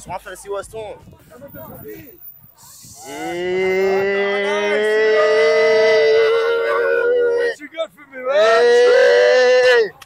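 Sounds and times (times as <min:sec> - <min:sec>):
men's voices holding a long note: 0:03.0 - 0:07.6.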